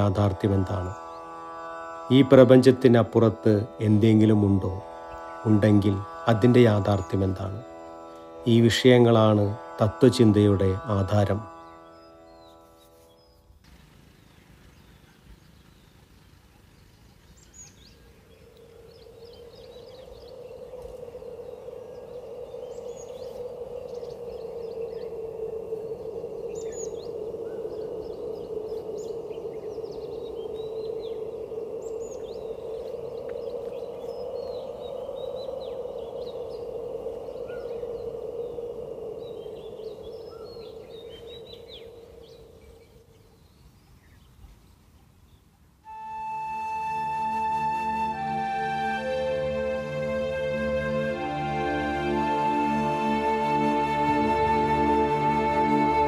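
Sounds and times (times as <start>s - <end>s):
thin steady high tone: 0.0s - 13.6s, 17.7s - 43.4s, 45.9s - 56.0s
birds chirping: 0.0s - 56.0s
low droning hum: 17.3s - 43.6s.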